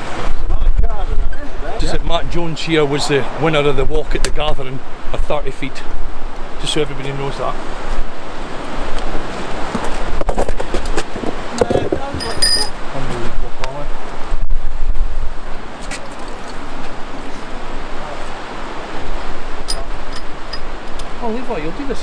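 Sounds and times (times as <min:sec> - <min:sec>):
wind buffeting microphone: 0:00.0 - 0:22.0
river rapids rushing: 0:01.2 - 0:03.9, 0:15.3 - 0:22.0.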